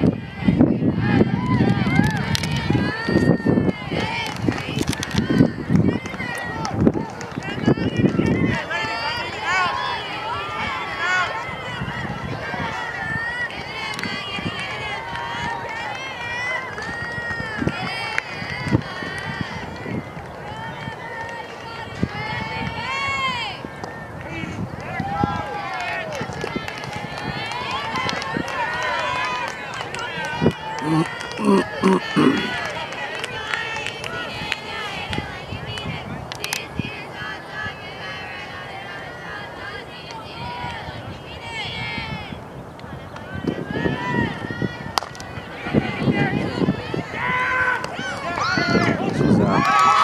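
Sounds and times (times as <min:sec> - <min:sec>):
crowd voices calling and chattering: 0:00.0 - 0:50.0.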